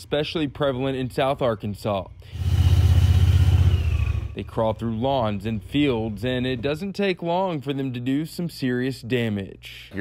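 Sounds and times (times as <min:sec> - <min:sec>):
engine rumbling: 0:00.0 - 0:07.0.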